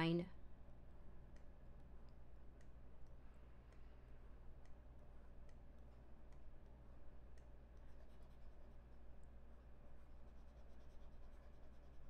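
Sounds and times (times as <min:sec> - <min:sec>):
low steady hum: 0:00.0 - 0:12.0
stylus scratching on tablet: 0:07.4 - 0:12.0.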